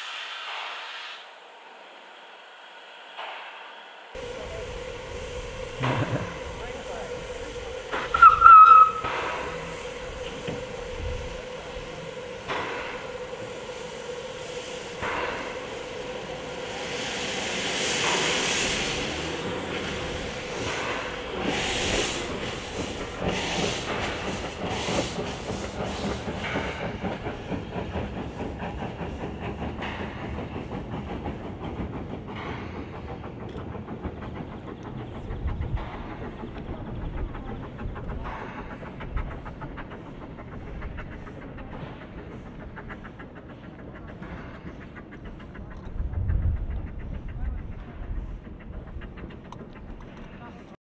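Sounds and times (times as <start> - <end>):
steam hissing: 0.0 - 50.8
steam exhaust chuffs: 3.2 - 50.8
steam whistle blast: 8.0 - 9.2.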